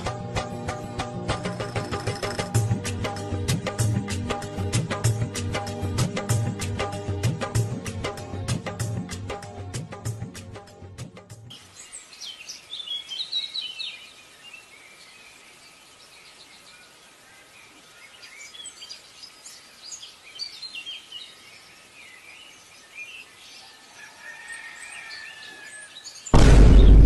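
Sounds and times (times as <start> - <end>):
faint steady hiss: 11.5 - 24.3
small birds chirping: 11.5 - 27.0.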